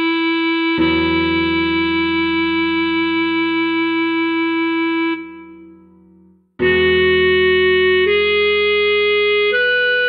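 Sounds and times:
clarinet holding a long note: 0.0s - 5.8s, 6.6s - 10.0s.

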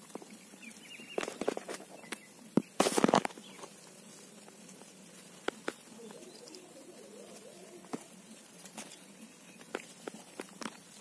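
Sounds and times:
steady hiss: 0.0s - 11.0s
leaves handling clicks and taps: 1.1s - 11.0s
faint warbling call: 5.9s - 8.3s.

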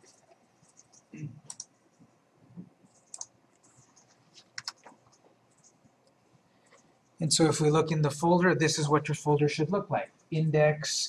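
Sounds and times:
computer mouse clicks: 0.0s - 1.8s, 2.6s - 6.9s.

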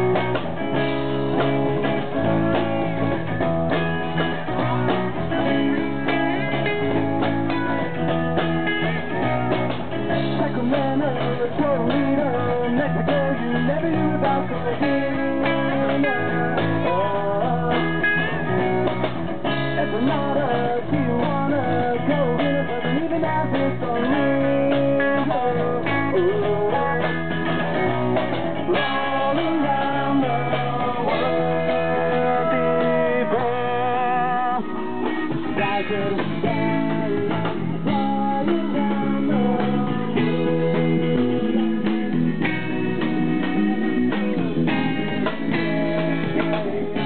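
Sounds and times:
bending guitar notes: 0.0s - 47.0s
drum kit: 0.0s - 47.0s
electric guitars: 0.0s - 47.0s.

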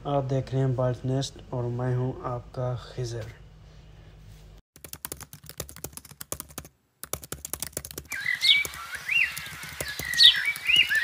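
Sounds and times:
keyboard typing clicks: 4.8s - 11.0s
bird whistles and chirps: 8.1s - 11.0s.

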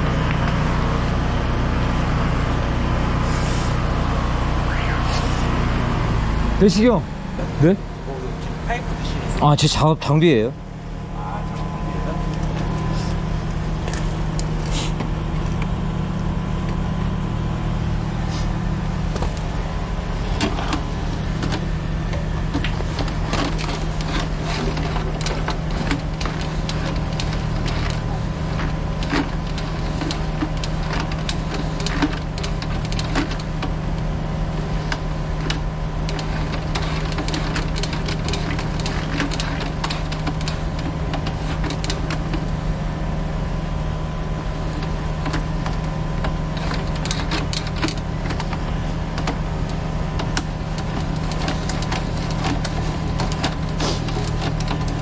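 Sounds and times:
engine-driven machine droning: 0.0s - 55.0s.

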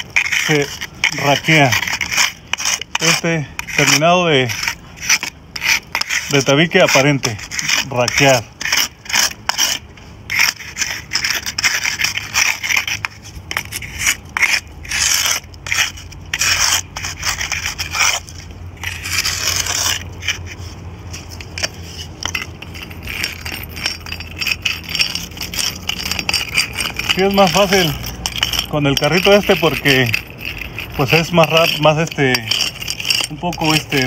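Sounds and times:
nail scraping mortar: 0.0s - 34.0s.

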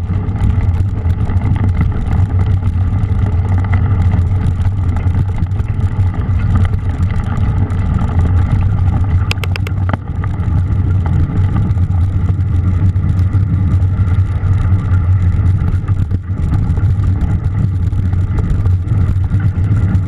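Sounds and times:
bike tyre noise: 0.0s - 20.0s
wind buffeting microphone: 0.0s - 20.0s
quick clicks: 9.3s - 9.8s.

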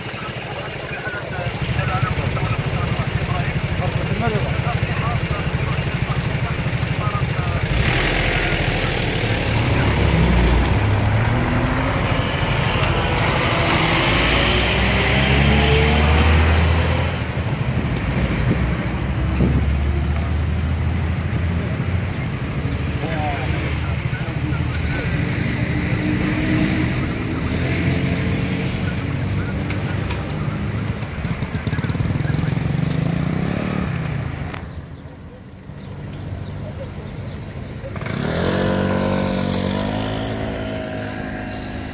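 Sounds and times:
motorcycle engines revving: 0.0s - 41.9s
road traffic rumble: 0.0s - 41.9s
voices talking: 0.0s - 41.9s.

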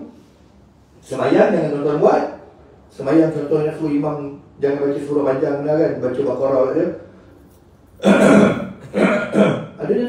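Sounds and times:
man clearing his throat: 8.0s - 9.8s.

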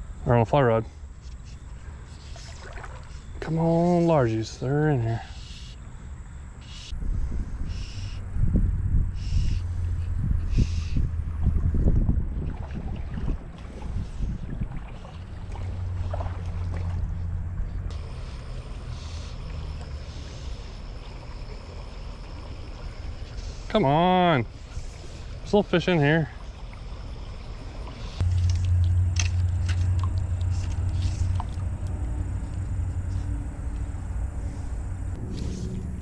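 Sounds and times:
wind buffeting microphone: 6.9s - 17.9s, 28.2s - 36.0s.

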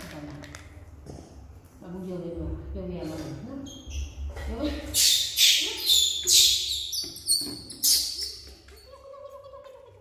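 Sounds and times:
monkeys squealing: 5.0s - 10.0s.

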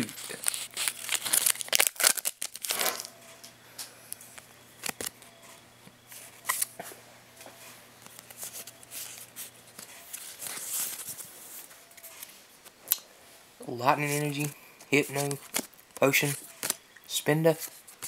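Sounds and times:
foil wrapper tearing and crinkling: 0.0s - 3.1s
cards being handled: 0.0s - 3.5s, 4.2s - 6.9s, 7.5s - 13.0s, 14.0s - 16.8s.

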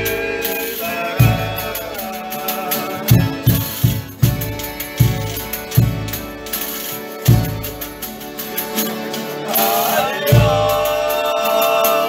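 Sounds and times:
frame drum jingling: 0.0s - 11.5s
accordion chords: 0.0s - 12.0s
guitars playing chords: 0.0s - 12.0s
low drum beats: 1.2s - 2.0s, 3.1s - 6.4s, 7.3s - 8.1s, 10.3s - 11.1s.

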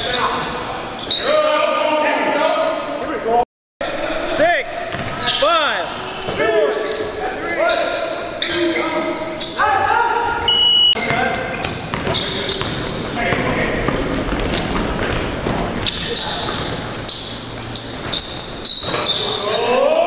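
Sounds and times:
sneakers squeaking on floor: 0.0s - 1.9s, 3.8s - 19.8s.

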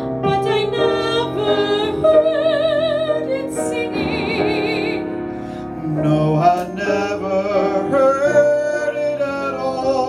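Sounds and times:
piano accompaniment: 0.0s - 10.0s
man singing into a microphone: 5.7s - 10.0s.

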